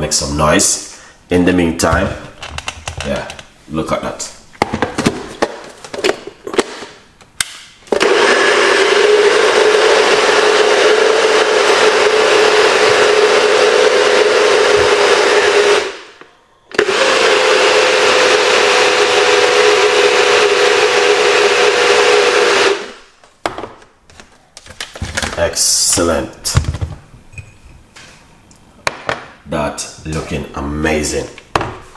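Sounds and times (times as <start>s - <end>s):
blender running: 7.9s - 23.0s.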